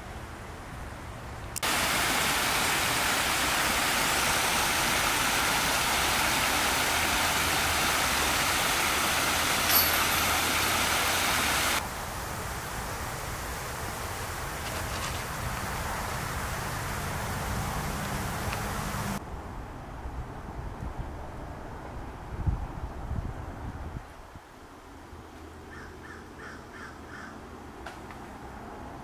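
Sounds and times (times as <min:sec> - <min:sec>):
creek water rushing: 0:01.6 - 0:19.2.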